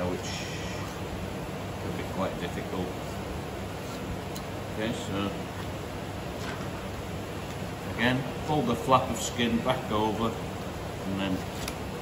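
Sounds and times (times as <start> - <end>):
ventilation hum and hiss: 0.0 - 12.0.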